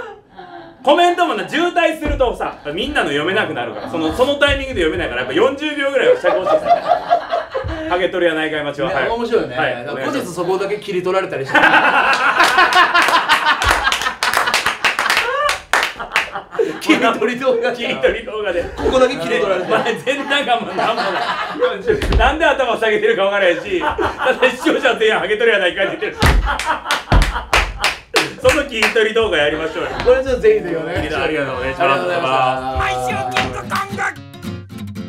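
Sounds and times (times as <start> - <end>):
men laughing hard: 6.0 - 7.9, 11.5 - 14.5, 17.9 - 22.0, 23.4 - 25.2, 25.8 - 28.4
hand claps: 12.1 - 16.4, 26.2 - 29.4, 32.8 - 34.1.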